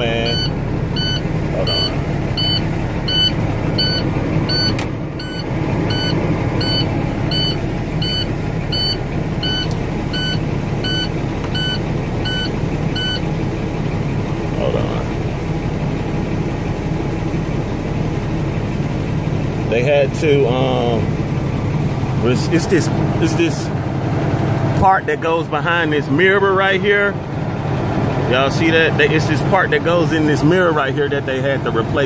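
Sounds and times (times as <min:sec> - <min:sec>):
dashboard warning chime beeping: 0:00.0 - 0:13.3
diesel engine idling: 0:00.0 - 0:32.0.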